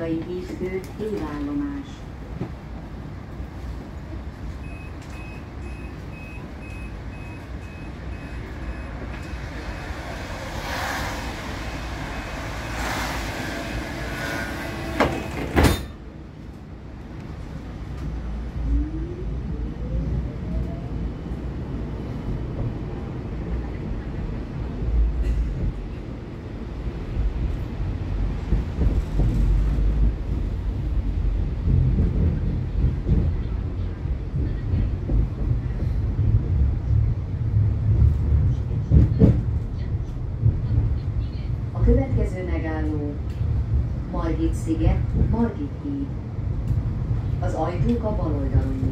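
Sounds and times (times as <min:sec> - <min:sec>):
tram doors shutting: 0:00.0 - 0:18.7, 0:20.3 - 0:48.9
street noise: 0:00.0 - 0:48.9
wheels rumbling on rail: 0:00.0 - 0:48.9
tram motors whining: 0:05.0 - 0:16.6.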